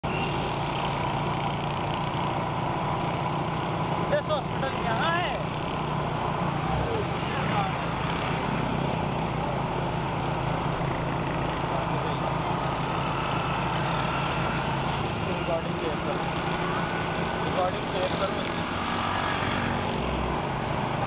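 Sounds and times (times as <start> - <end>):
motorcycle engines running: 0.0 - 21.0
road and wind noise: 0.0 - 21.0.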